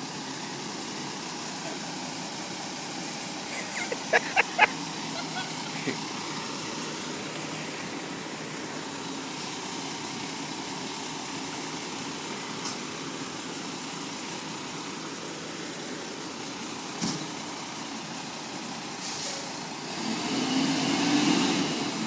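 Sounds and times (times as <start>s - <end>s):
diesel truck engine idling: 0.0s - 20.2s.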